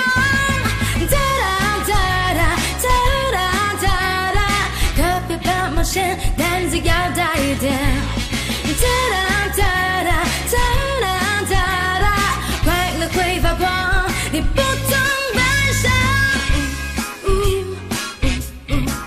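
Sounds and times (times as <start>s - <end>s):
pop song with singing: 0.0s - 19.0s.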